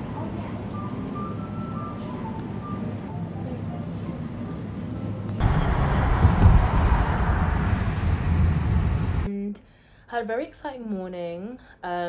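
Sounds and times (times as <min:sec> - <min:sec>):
car road noise from inside: 0:05.4 - 0:09.3
low hum: 0:05.4 - 0:09.3.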